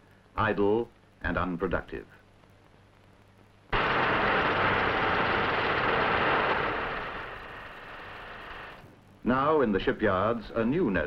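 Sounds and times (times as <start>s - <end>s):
metalworking din: 3.8s - 8.8s.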